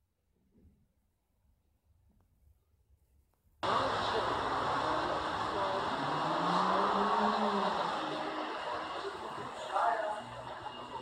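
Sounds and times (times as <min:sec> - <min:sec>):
car cabin road and engine noise: 0:03.6 - 0:11.0
faint voice: 0:03.6 - 0:11.0.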